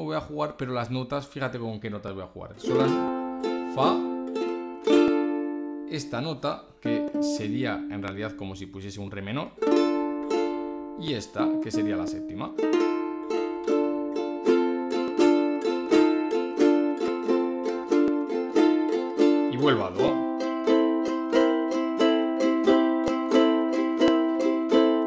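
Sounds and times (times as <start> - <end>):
ukulele strummed blues chords: 2.6 - 25.0.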